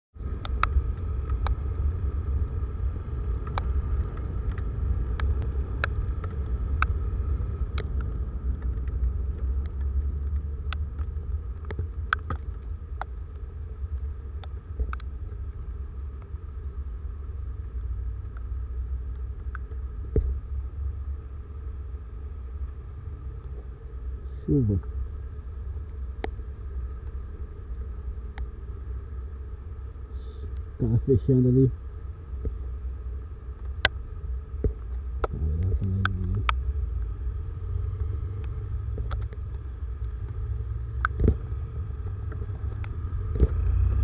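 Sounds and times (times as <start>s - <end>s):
motorcycle and tyres running: 0.2s - 31.0s, 31.8s - 44.0s
wind rumble on microphone: 32.3s - 44.0s.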